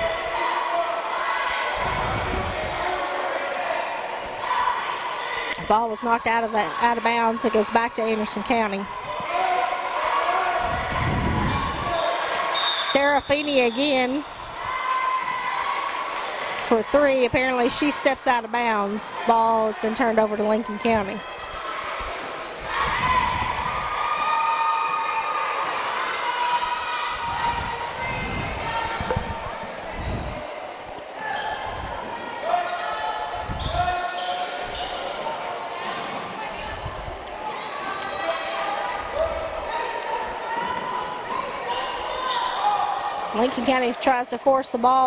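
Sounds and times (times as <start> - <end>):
spectators' voices echoing: 0.0 - 45.0.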